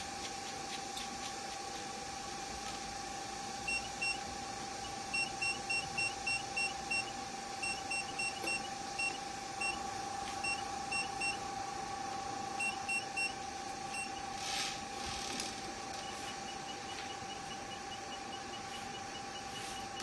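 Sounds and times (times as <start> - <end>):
steady high hum: 0.0 - 20.0.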